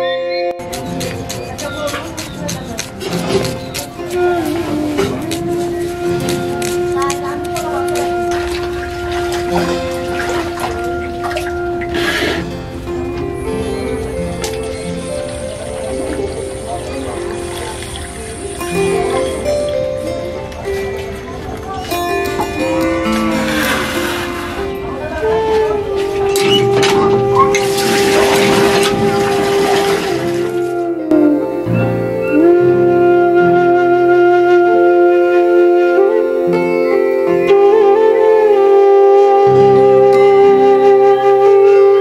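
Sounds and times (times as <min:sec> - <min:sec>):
background music with held notes: 0:00.0 - 0:42.0
water sloshing and splashing: 0:03.0 - 0:12.6, 0:14.3 - 0:19.1, 0:25.4 - 0:30.9
water gushing from a pump: 0:27.6 - 0:30.7.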